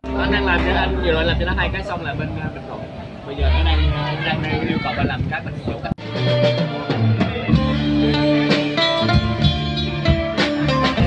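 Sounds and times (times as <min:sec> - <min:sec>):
small band playing: 0:00.0 - 0:11.0
acoustic guitar: 0:06.0 - 0:11.0.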